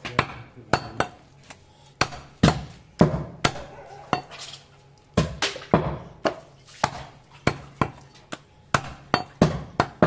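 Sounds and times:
cleaver chopping meat on wood: 0.0s - 4.4s, 5.2s - 10.0s.

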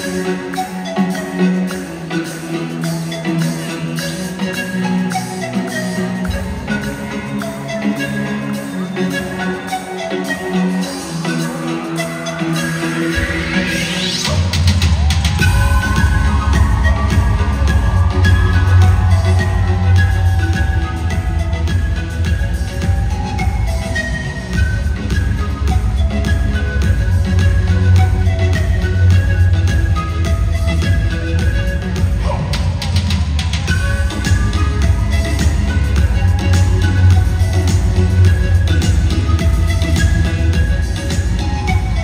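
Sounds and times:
flute-like lead melody: 0.0s - 42.0s
keyboards: 0.0s - 42.0s
heavy bass: 13.3s - 42.0s.

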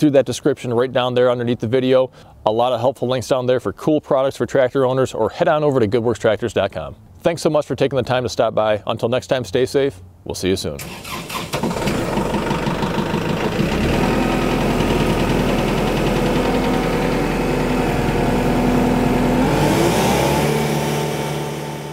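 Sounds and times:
engine starting and running: 10.8s - 21.9s.

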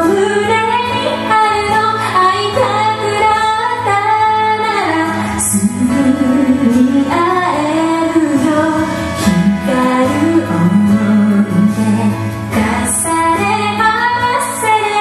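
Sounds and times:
keyboard piano: 0.0s - 15.0s
woman singing: 0.0s - 15.0s.

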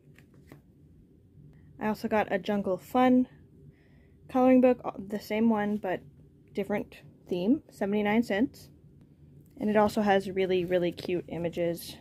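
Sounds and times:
paper pages rustling: 0.0s - 0.7s
woman speaking: 1.8s - 3.3s, 4.3s - 8.7s, 9.6s - 12.0s.

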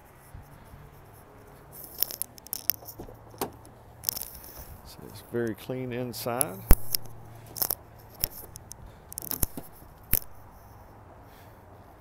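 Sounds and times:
keys jangling: 1.8s - 4.6s, 6.8s - 10.6s
car door unlatched and opened: 2.2s - 3.8s, 6.7s - 10.3s.

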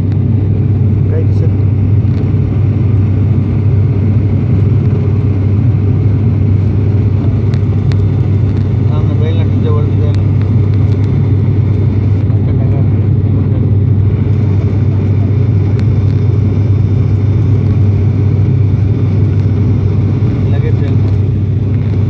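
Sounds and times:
airliner engine drone: 0.0s - 22.0s.

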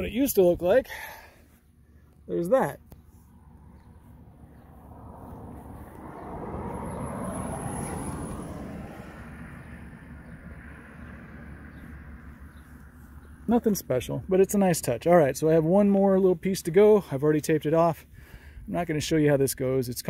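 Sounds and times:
vehicle passing: 1.0s - 17.1s.

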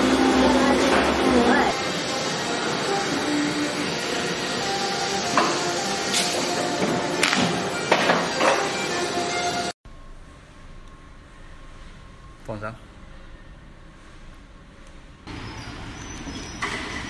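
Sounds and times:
guillotine cutter machine noise: 0.0s - 9.7s.

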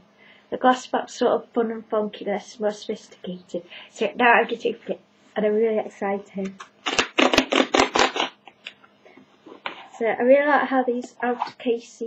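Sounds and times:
packaging rustling scrapes: 6.8s - 8.4s.

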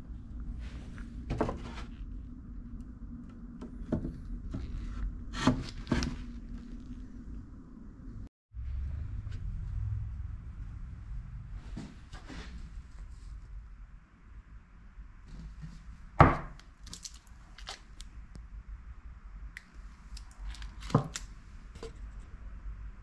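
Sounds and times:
low room hum: 0.0s - 23.0s
small clicks and rustles: 16.6s - 18.1s.

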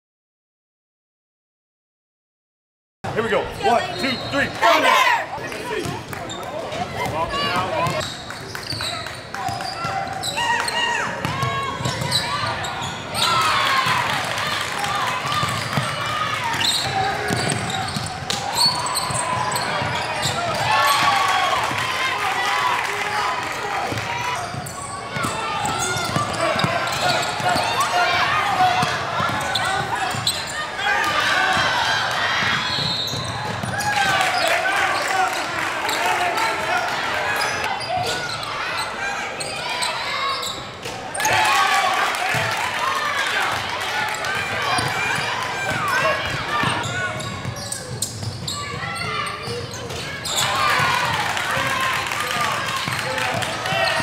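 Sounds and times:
voices of players and spectators: 3.0s - 54.0s.

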